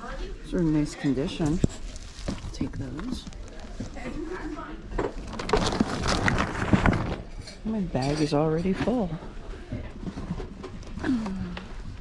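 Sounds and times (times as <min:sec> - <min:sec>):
shopping bag rustling: 0:00.7 - 0:04.4, 0:05.2 - 0:07.4.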